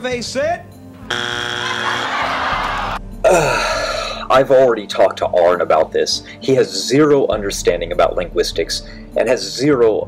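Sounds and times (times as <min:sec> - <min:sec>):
harsh buzzer: 0:01.1 - 0:02.5
man laughing: 0:03.3 - 0:04.2.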